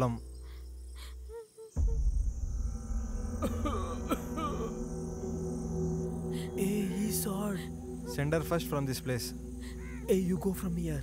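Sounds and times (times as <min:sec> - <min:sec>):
insects chirring: 0:00.0 - 0:11.0
low rumble: 0:01.8 - 0:09.6.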